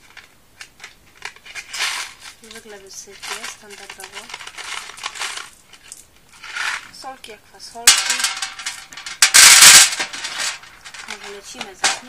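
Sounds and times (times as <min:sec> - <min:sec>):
jelly beans clattering: 0:00.0 - 0:12.0
jelly beans rustling: 0:00.0 - 0:12.0.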